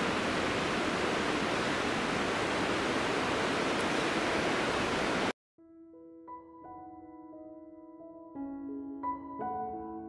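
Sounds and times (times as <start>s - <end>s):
waterfall rushing: 0.0s - 5.3s.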